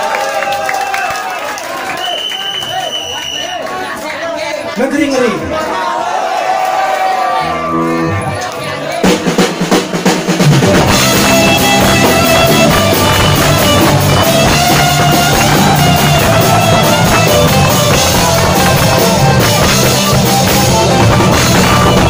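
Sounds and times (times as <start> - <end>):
punk rock band playing: 7.3 - 22.0
drum hits: 9.0 - 22.0.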